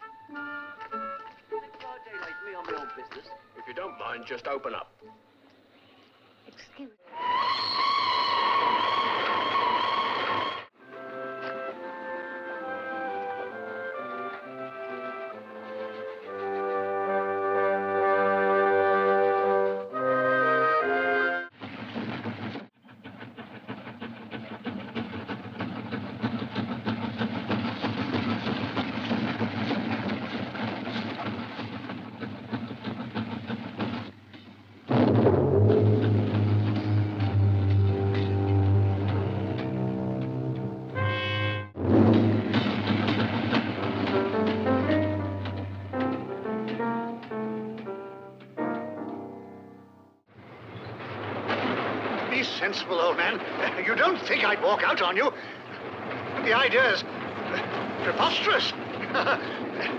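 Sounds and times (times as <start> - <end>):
orchestral film music: 0.0 - 5.6, 7.0 - 21.5, 34.9 - 50.3
steam train passing: 0.0 - 49.1, 50.2 - 59.9
steam locomotive whistle: 7.1 - 21.5, 35.7 - 42.6
loud brass music: 12.4 - 21.5, 34.9 - 43.1.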